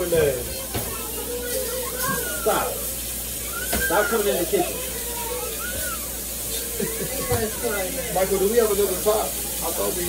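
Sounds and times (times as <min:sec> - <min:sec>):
steak sizzling in a pan: 0:00.0 - 0:10.0.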